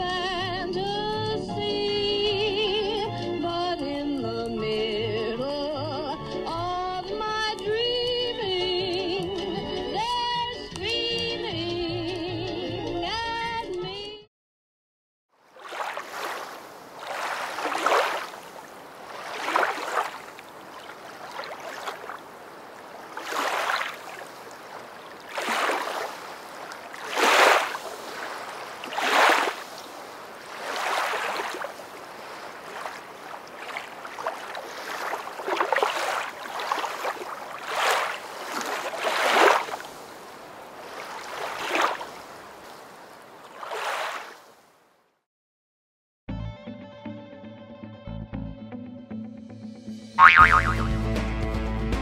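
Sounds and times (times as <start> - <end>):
water splashing around swimming dog: 15.6 - 44.5.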